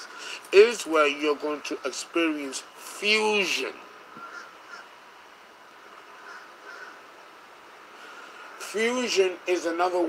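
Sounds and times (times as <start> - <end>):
faint outdoor hum: 0.0 - 10.0
bird cawing: 4.1 - 5.0, 5.9 - 7.4.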